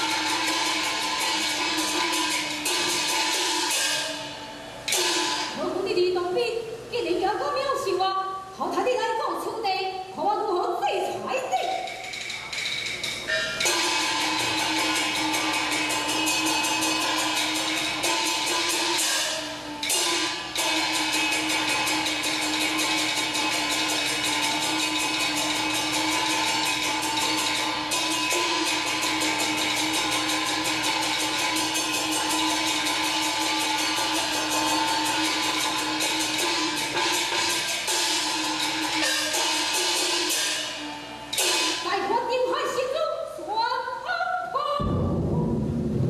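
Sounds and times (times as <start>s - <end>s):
fast percussion strikes: 0.0s - 6.2s, 11.4s - 42.3s, 44.8s - 46.0s.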